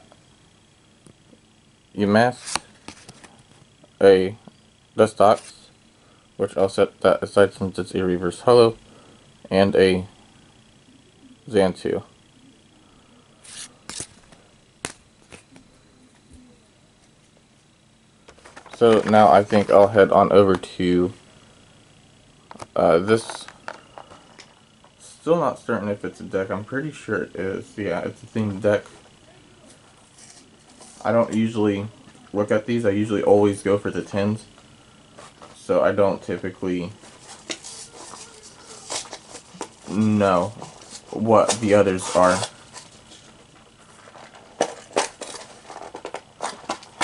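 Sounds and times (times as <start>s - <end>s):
cards tapping and clicking: 13.9s - 15.6s
packaging rustling: 18.2s - 19.9s, 37.0s - 47.0s.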